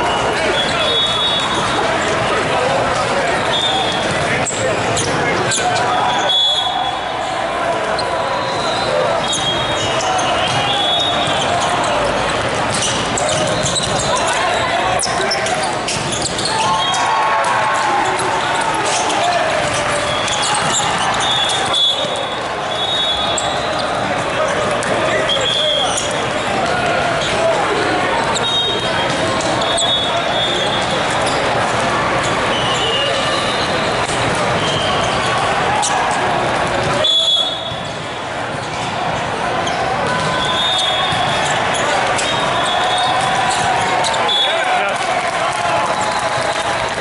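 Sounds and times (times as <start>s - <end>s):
babble of voices: 0.0s - 47.0s
high-pitched shoe squeaks: 7.9s - 17.1s, 18.1s - 26.2s, 28.2s - 31.6s, 32.2s - 36.2s, 39.6s - 44.6s.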